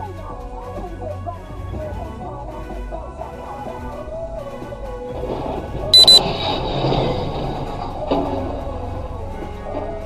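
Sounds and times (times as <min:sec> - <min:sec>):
background music: 0:00.0 - 0:10.0
high-pitched double beep: 0:06.0 - 0:06.2.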